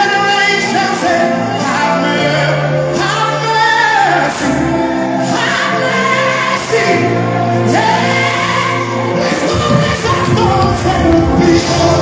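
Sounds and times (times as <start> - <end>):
man singing lead: 0.0 - 12.0.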